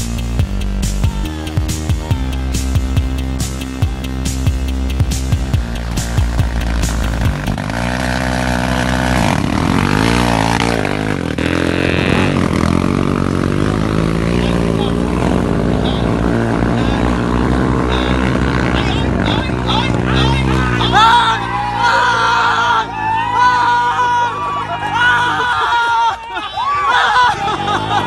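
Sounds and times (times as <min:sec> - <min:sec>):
quad engine revving: 0:00.0 - 0:25.6, 0:26.9 - 0:28.0
people's voices: 0:13.5 - 0:28.0.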